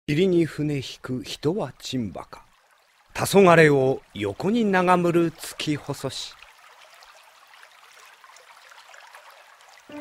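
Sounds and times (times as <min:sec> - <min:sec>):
faint trickling water: 0:00.1 - 0:10.0.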